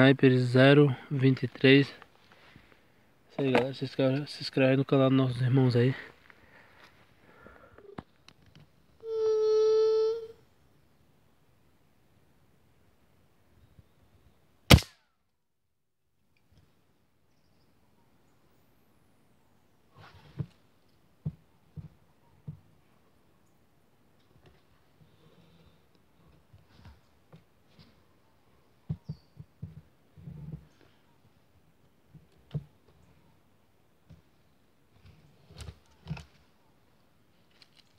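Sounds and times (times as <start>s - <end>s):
gunshot: 14.7s - 15.0s.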